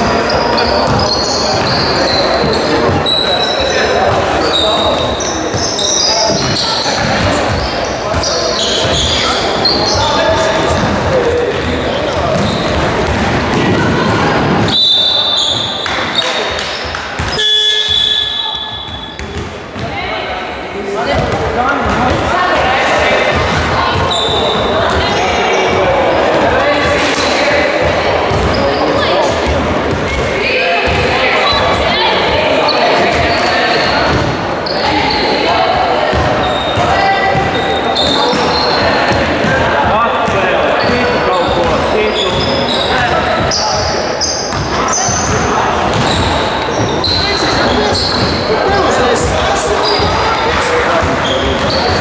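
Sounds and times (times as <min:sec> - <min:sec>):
sneaker squeaks: 0:00.0 - 0:20.3, 0:21.0 - 0:52.0
players calling out: 0:00.0 - 0:52.0
basketball bouncing on wooden floor: 0:06.3 - 0:08.2, 0:08.8 - 0:14.7, 0:44.5 - 0:48.4.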